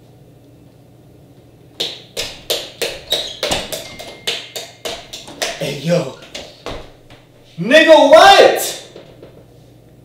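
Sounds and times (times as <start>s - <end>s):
rapid sharp knocks: 1.8s - 7.3s.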